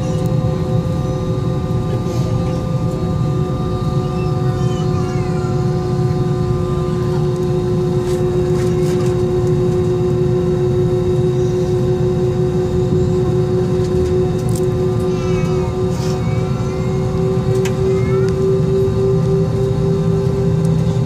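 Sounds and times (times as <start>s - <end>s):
aircraft cabin rumble: 0.0s - 21.0s
jet engine whine: 0.0s - 21.0s.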